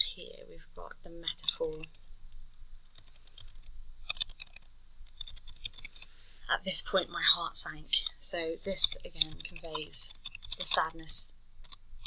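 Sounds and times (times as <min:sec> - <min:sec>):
computer keyboard typing: 0:02.9 - 0:06.1, 0:08.7 - 0:11.8.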